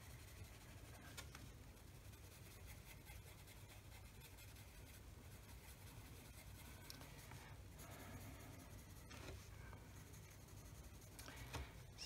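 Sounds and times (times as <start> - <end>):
pencil scratching on paper: 0.0 - 11.6
low room hum: 0.0 - 12.0.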